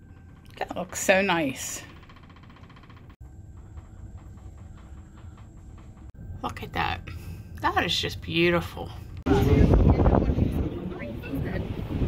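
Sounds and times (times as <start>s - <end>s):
ship engine rumble: 0.0s - 12.0s.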